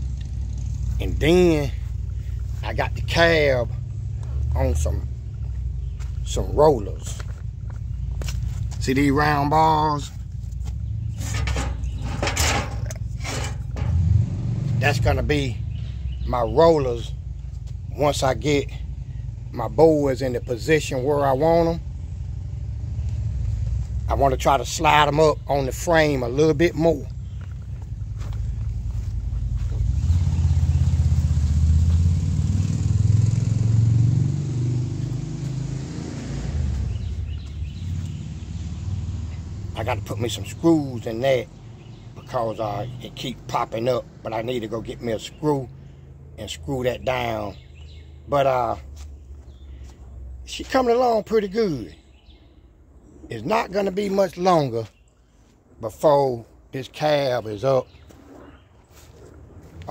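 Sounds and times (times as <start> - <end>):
vehicle engine rumbling: 0.0 - 59.9
steel bar knocking and scraping: 11.2 - 14.2.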